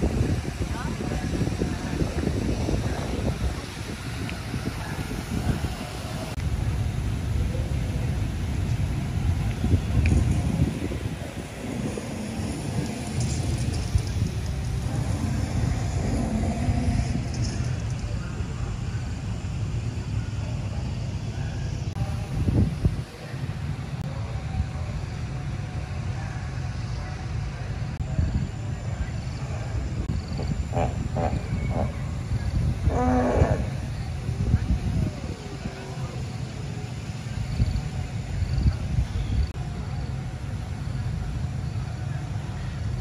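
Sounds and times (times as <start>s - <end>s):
voices: 0.0s - 43.0s
dinosaur roars over loudspeakers: 14.8s - 17.6s, 32.8s - 34.0s.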